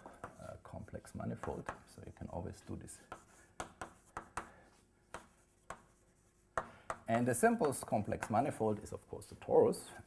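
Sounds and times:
chalk scraping: 0.0s - 7.0s
chalk tapping on blackboard: 0.0s - 8.5s.

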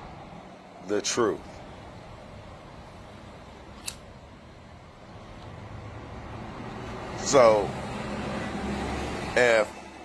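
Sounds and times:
sharp click: 3.8s - 4.1s.

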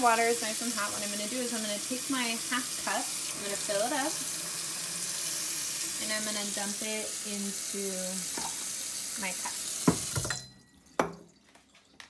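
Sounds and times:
tap running into steel sink: 9.4s - 10.4s.

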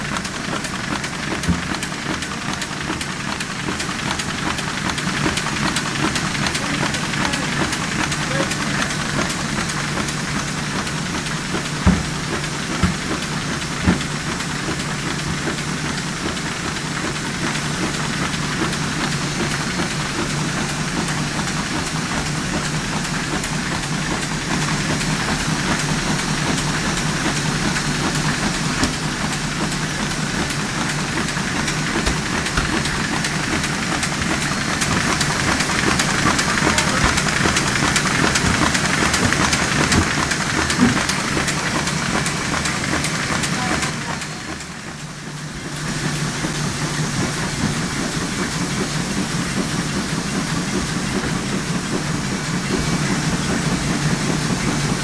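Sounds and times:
printing press clatter: 0.0s - 55.0s.

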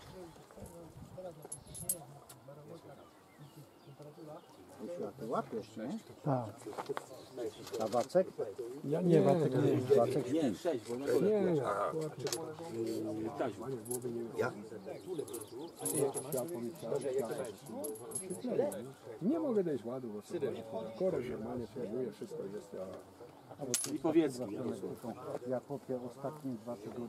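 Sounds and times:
indistinct voices talking: 0.0s - 27.0s.

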